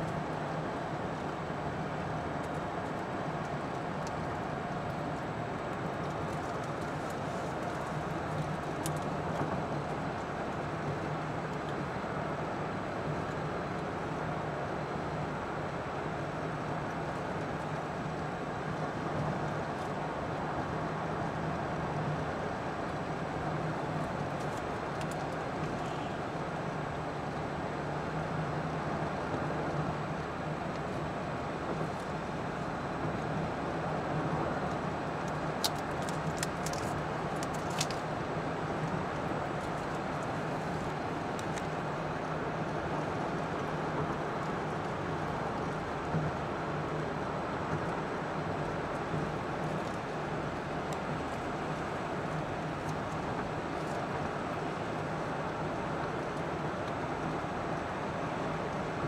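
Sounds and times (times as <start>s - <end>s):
car road noise at highway speed: 0.0s - 59.0s.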